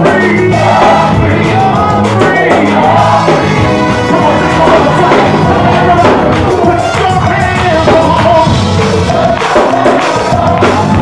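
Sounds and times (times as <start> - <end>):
gospel choir singing: 0.0 - 11.0
live band playing: 0.0 - 11.0.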